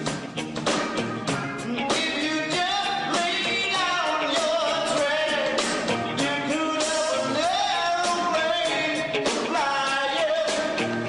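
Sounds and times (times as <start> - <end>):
drums: 0.0 - 11.0
keyboards: 0.0 - 11.0
live band playing: 0.0 - 11.0
person singing: 1.0 - 11.0.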